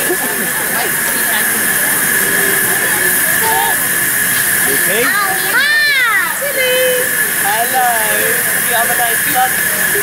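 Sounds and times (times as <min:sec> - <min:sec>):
people's voices: 0:00.0 - 0:10.0
steam hissing: 0:00.0 - 0:10.0.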